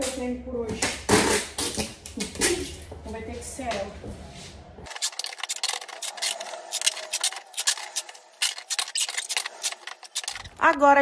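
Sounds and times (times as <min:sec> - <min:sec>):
packing tape ripping off roll: 0:04.9 - 0:10.6.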